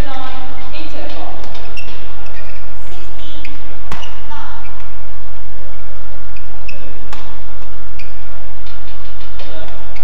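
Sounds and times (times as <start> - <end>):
low hum: 0.0 - 10.0
shoe squeaks on court: 1.5 - 4.9, 6.3 - 8.2
racket hitting shuttlecock: 3.4 - 4.8, 6.4 - 10.0.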